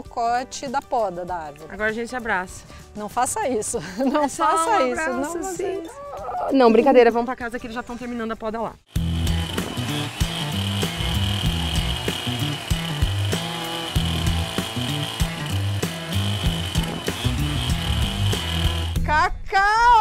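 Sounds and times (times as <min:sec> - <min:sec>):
background music with steady beat: 0:00.0 - 0:19.6
chainsaw cutting wood: 0:08.9 - 0:19.0.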